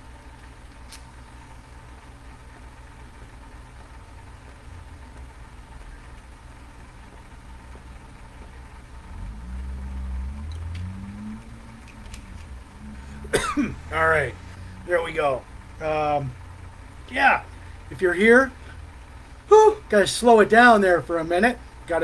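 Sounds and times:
low electrical hum: 0:00.0 - 0:22.0
person humming mm: 0:09.2 - 0:13.8.

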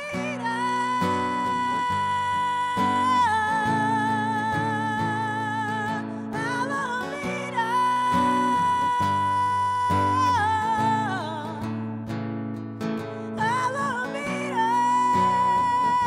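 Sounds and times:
woman singing: 0:00.0 - 0:12.2, 0:13.0 - 0:16.0
acoustic guitar chords: 0:00.0 - 0:16.0.

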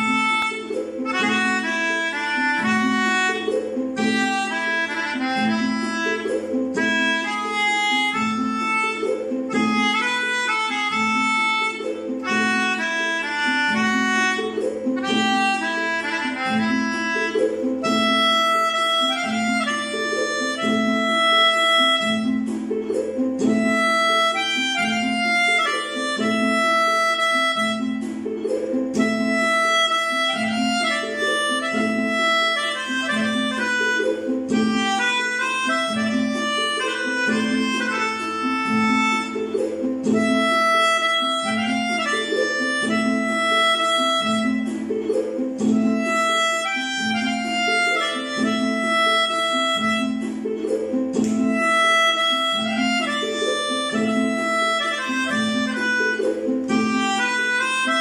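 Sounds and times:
low repeating accompaniment: 0:00.0 - 0:58.0
melodica melody: 0:00.0 - 0:58.0.

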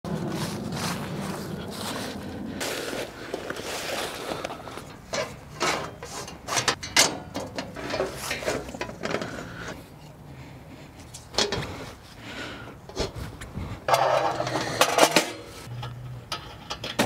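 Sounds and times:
footsteps in dry leaves: 0:00.1 - 0:04.9
metal fire pit clanking: 0:04.4 - 0:09.8, 0:11.1 - 0:11.8, 0:13.9 - 0:17.0.

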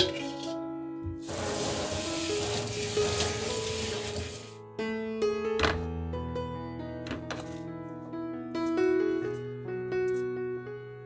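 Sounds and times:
gentle piano music: 0:00.0 - 0:11.0
tap water running into sink: 0:01.2 - 0:04.6.

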